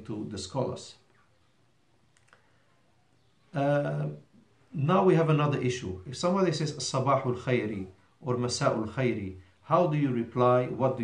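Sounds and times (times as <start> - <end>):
faint clicks: 2.1 - 2.5.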